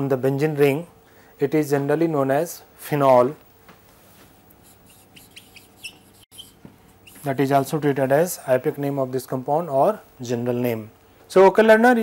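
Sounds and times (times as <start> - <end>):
marker pen squeaking on whiteboard: 4.6 - 7.4
short high chirps: 4.9 - 7.2.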